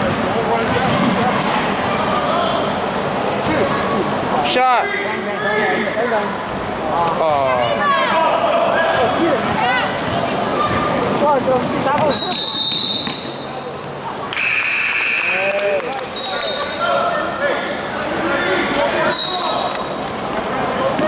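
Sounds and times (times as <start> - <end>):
voices: 0.0 - 21.0.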